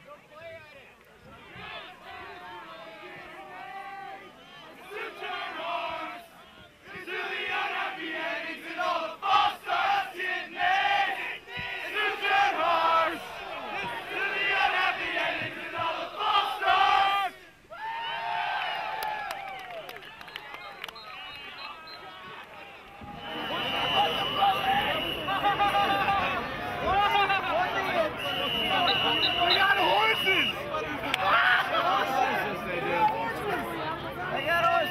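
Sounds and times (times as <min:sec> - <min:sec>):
crowd noise: 0:00.0 - 0:34.9
crowd chanting: 0:01.2 - 0:17.6, 0:21.6 - 0:34.9.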